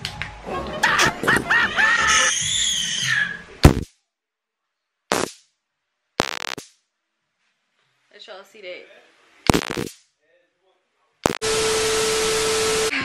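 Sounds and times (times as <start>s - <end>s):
short bursts of noise: 6.2s - 6.7s, 9.5s - 10.1s, 11.2s - 11.9s.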